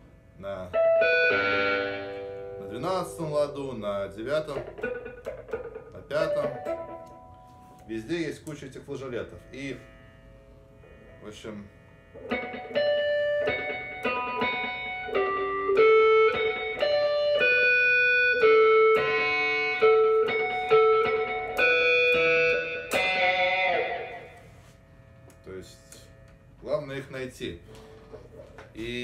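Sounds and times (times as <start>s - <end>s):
electric guitar strum: 0.0s - 24.5s
electric guitar harmonics melody: 0.0s - 29.0s.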